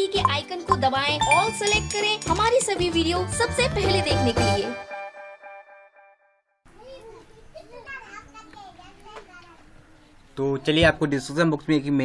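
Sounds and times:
children's voices talking: 6.7s - 11.2s.

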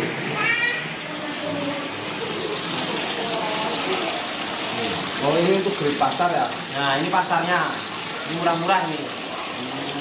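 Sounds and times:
water running into pond: 0.0s - 10.0s.

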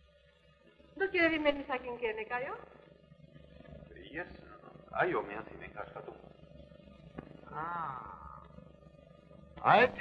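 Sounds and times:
old soundtrack hum and hiss: 0.0s - 10.0s.

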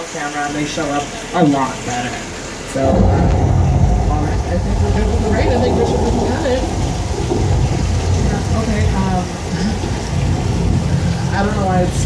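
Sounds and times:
sprinkler water falling: 0.0s - 12.0s
low rumble: 2.7s - 12.0s.

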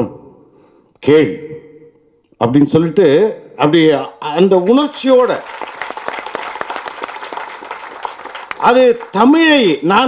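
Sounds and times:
audience applauding: 4.7s - 9.8s.

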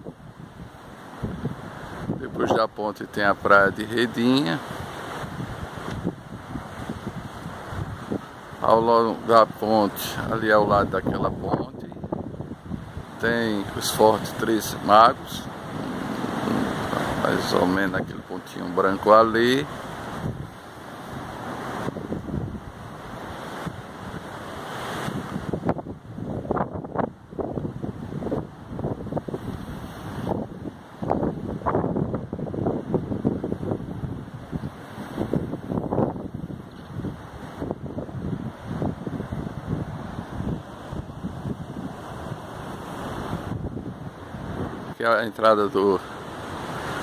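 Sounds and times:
wind buffeting microphone: 0.0s - 18.4s, 19.4s - 45.0s
ocean surf on rocky shore: 0.0s - 47.0s.

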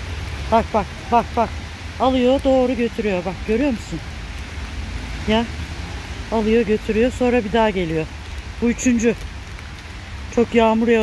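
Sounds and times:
steady rain on wet pavement: 0.0s - 11.0s.

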